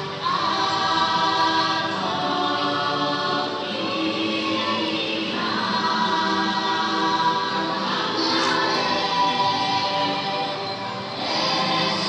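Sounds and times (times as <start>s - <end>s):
choir-like singing music: 0.0s - 12.0s.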